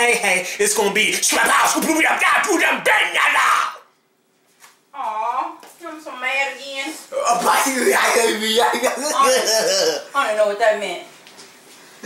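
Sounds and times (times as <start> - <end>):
person speaking: 7.1 - 10.5.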